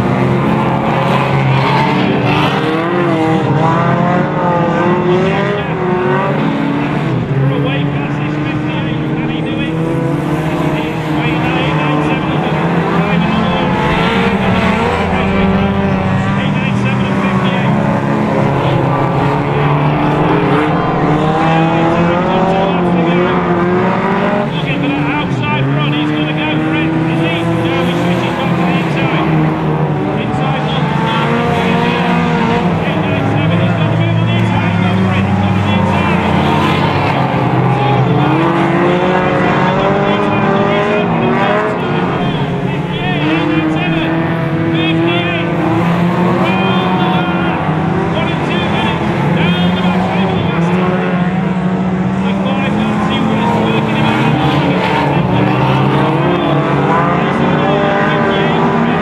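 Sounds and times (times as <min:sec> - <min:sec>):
race car engines revving: 0:00.0 - 0:59.0.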